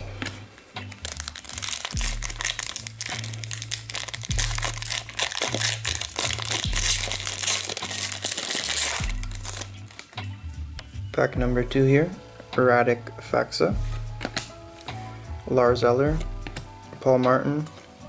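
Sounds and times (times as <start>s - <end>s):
background music with bass line: 0.0s - 18.0s
plastic wrapper tearing and crinkling: 0.9s - 10.3s.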